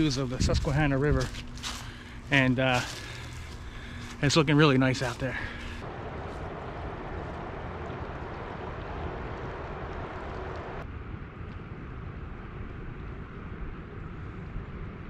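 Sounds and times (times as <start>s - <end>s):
wind rumble on microphone: 0.0s - 15.0s
river water rushing: 5.6s - 10.8s.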